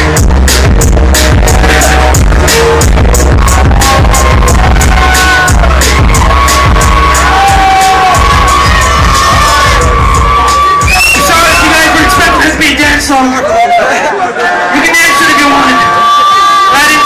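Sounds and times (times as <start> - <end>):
bass-heavy hip-hop beat: 0.0 - 13.3
crowd cheering and shouting: 0.0 - 17.0.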